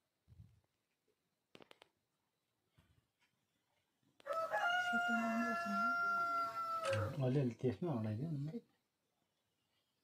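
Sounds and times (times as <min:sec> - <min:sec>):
rooster crowing: 0:04.2 - 0:07.2.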